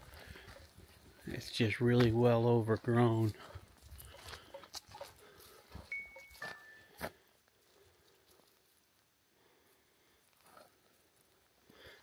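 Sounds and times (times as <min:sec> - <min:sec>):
soft footsteps on trail: 0:00.0 - 0:12.0.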